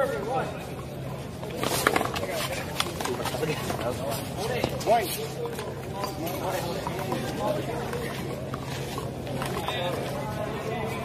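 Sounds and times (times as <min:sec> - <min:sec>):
faint talk: 0:00.0 - 0:11.0.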